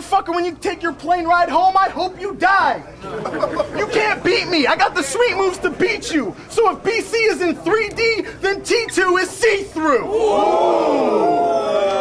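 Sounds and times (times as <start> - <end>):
crowd of men going ohhh: 10.1 - 12.0.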